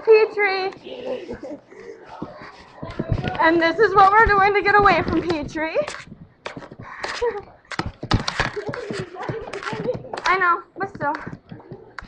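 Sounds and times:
crowd chatter: 0.0 - 4.6, 8.2 - 10.3.

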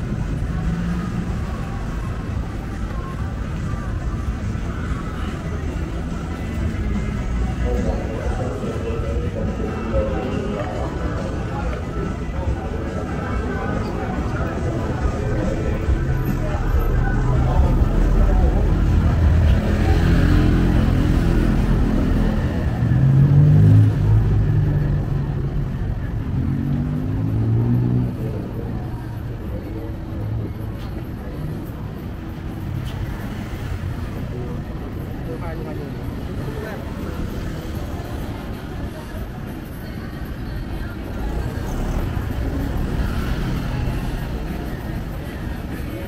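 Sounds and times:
vehicle engines passing: 0.0 - 46.0
voices: 0.0 - 46.0.

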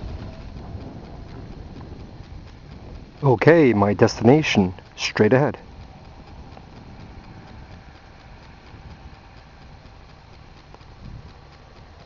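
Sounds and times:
light evenly spaced clicks: 0.0 - 12.0
low rumble: 0.0 - 12.0.

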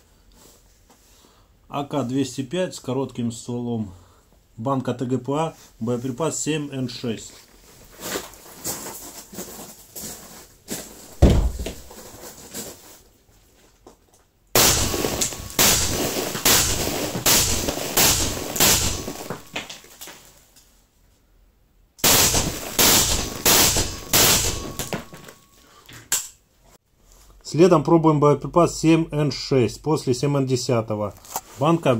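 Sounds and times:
suppressed rifle shots: 22.0 - 25.1.

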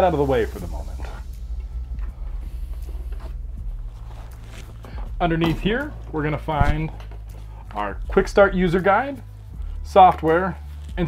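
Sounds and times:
soft background music: 0.0 - 11.0
packaging rustling: 3.2 - 5.7.

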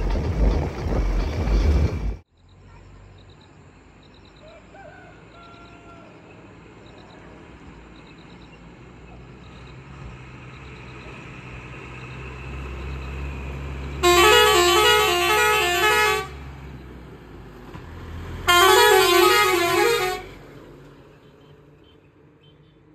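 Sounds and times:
truck engine running: 0.0 - 4.4, 6.5 - 22.0
musical multi-note horn: 14.0 - 16.4, 18.5 - 20.4.

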